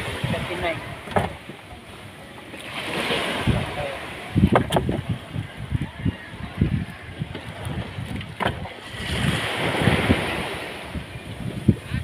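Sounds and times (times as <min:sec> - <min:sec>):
wind on microphone: 0:00.0 - 0:01.6, 0:02.7 - 0:12.0
water lapping at boat: 0:00.0 - 0:12.0.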